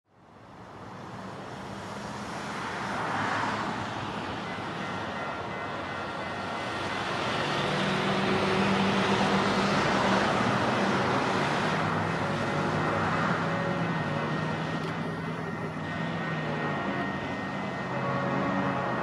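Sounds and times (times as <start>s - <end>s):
engine rumble and road noise: 0.3s - 19.0s.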